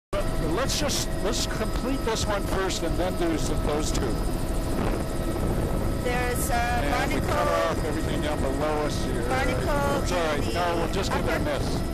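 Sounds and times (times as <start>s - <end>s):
helicopter rotor and engine drone: 0.2s - 11.9s.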